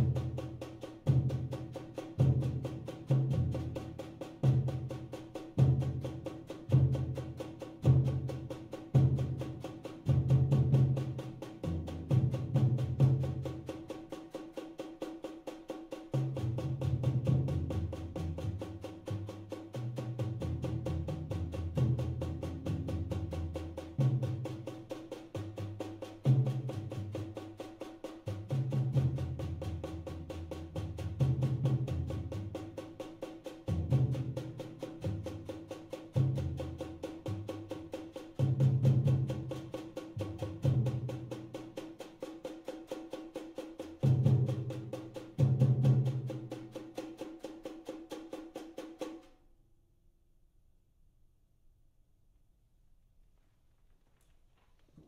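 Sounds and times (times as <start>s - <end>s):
heavy low drum strokes: 0.0s - 14.4s
drums playing rapid strokes: 0.0s - 49.4s.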